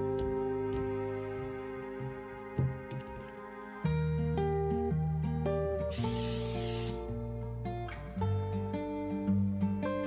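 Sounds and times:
plucked guitar music: 0.0 - 10.0
spray hiss: 5.9 - 7.1.

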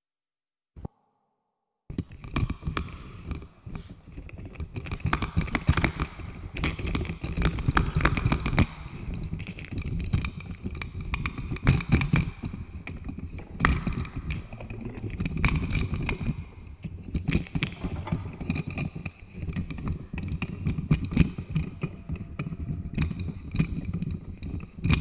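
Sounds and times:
irregular clicks and taps: 4.1 - 25.0.

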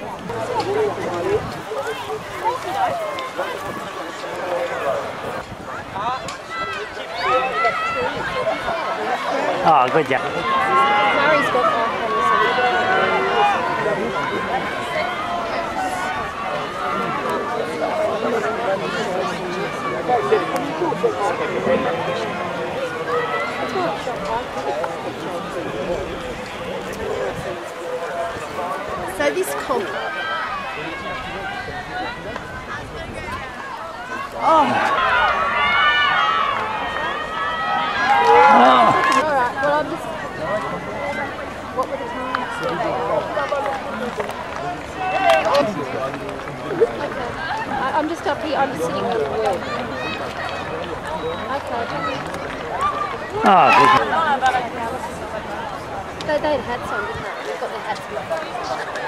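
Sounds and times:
background chatter of voices: 0.0 - 59.0
outdoor background noise: 0.0 - 59.0
spectators talking: 0.0 - 59.0.

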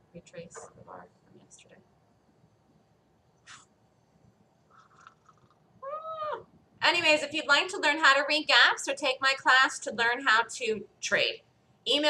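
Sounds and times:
high-pitched animal call: 5.8 - 6.5.

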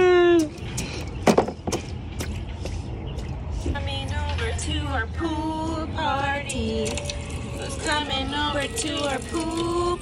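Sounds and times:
steady low rumble: 0.4 - 8.8.

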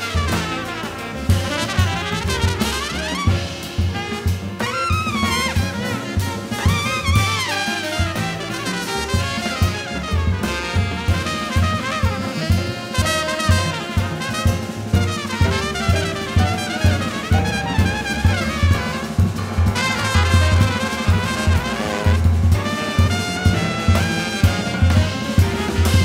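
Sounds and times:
drum kit beat: 0.0 - 26.0
piano: 0.0 - 26.0
trumpet solo: 0.0 - 26.0
upright bass: 0.0 - 26.0.

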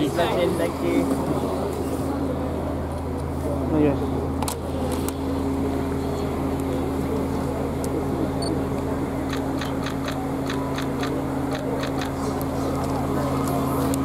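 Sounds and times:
low engine hum: 0.0 - 14.0.

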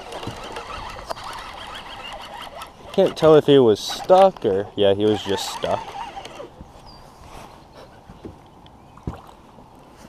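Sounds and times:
water lapping against hull: 8.9 - 10.0.

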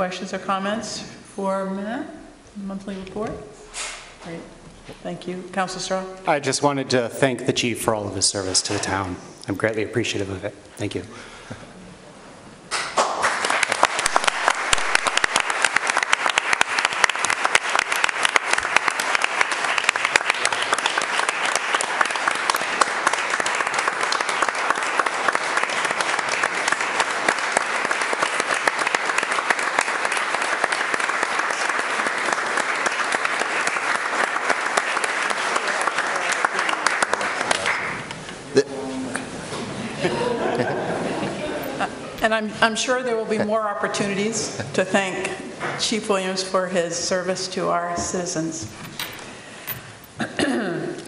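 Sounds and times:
crowd applause: 12.9 - 38.1.

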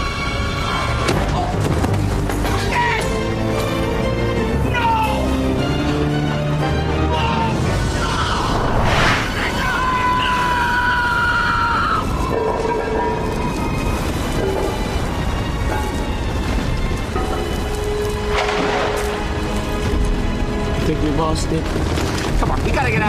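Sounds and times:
dramatic score with held tones: 0.0 - 23.0
low rumbling of cave collapse: 0.0 - 23.0
noisy crash: 8.4 - 9.6.

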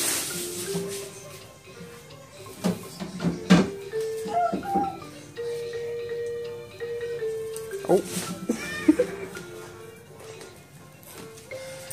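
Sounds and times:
electronic toy melody: 3.7 - 10.1.

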